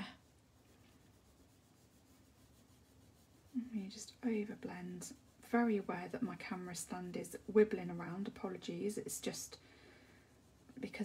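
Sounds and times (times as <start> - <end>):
pencil rubbing on paper: 0.0 - 11.0.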